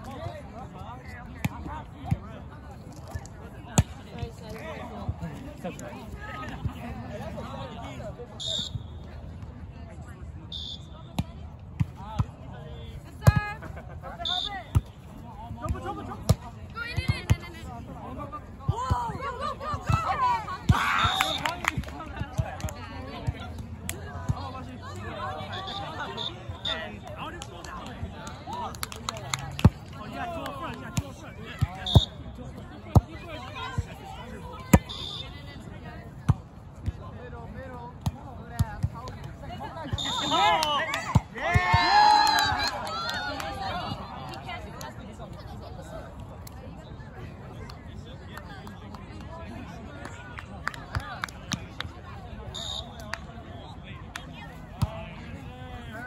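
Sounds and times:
voices of players: 0.0s - 56.0s.

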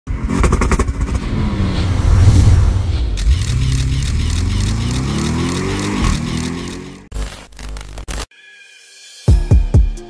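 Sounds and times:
vehicle engine revving: 0.1s - 7.1s.

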